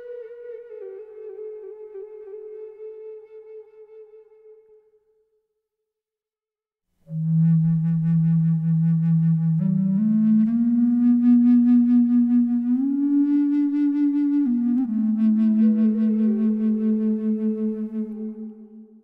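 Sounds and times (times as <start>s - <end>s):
higher flute line: 0.0s - 5.0s, 7.1s - 19.0s
low bass flute melody: 0.0s - 5.0s, 7.1s - 19.0s.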